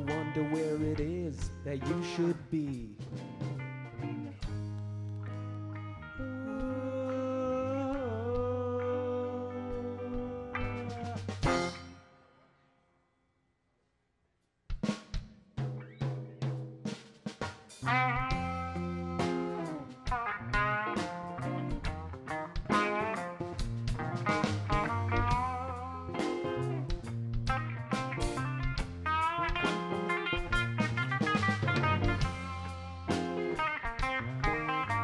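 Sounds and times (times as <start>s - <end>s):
guitar with bent notes: 0.0s - 12.2s, 15.7s - 16.6s, 17.7s - 35.0s
rock band playing: 0.0s - 12.2s, 15.6s - 35.0s
drum hits with bass notes: 10.2s - 11.9s, 14.7s - 35.0s.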